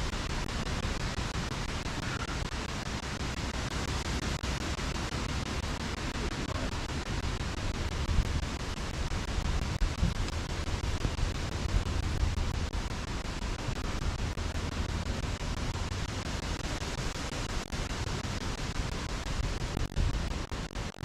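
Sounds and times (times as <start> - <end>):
wind buffeting microphone: 6.9 - 17.2.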